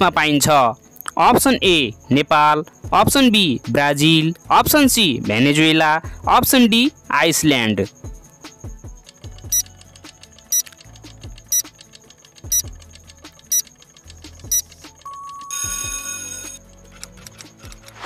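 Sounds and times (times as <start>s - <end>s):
background music: 0.0s - 18.0s
ringing alarm: 10.3s - 10.8s, 11.4s - 12.8s, 13.4s - 13.8s, 14.5s - 16.6s
short timer beeps: 10.5s - 10.7s, 12.5s - 12.7s, 14.5s - 16.6s.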